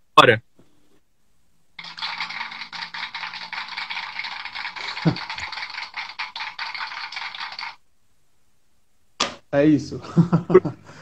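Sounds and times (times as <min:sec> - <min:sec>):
crowd clapping: 0:01.8 - 0:07.8.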